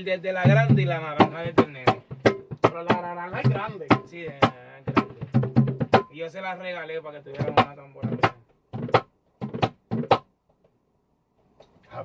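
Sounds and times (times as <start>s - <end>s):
drum strikes: 0.5s - 6.2s, 7.3s - 10.3s.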